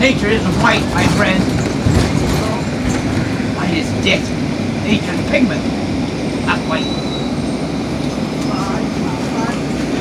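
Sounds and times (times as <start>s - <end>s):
bus engine rumble inside cabin: 0.0s - 10.0s.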